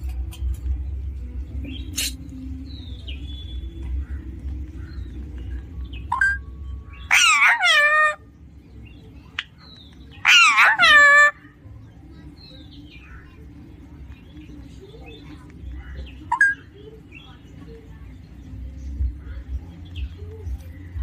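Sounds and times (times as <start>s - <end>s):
parakeet calling: 6.1s - 8.4s, 10.2s - 11.6s, 15.8s - 16.7s.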